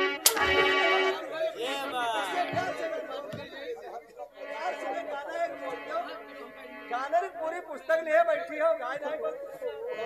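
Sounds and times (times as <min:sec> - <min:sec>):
voices talking over sound system: 0:00.0 - 0:10.0.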